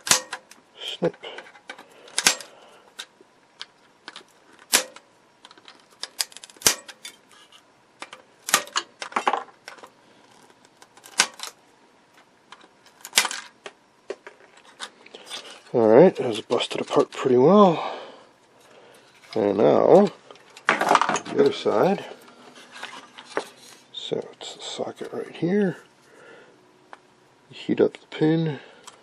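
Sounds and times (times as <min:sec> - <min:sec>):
cutters snapping plastic: 0:00.0 - 0:00.6, 0:01.3 - 0:02.5, 0:03.6 - 0:07.2, 0:08.0 - 0:09.8, 0:10.8 - 0:11.6.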